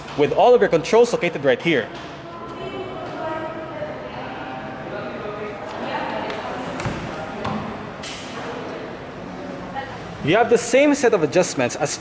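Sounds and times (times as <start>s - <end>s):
indistinct background voices: 1.8s - 12.0s.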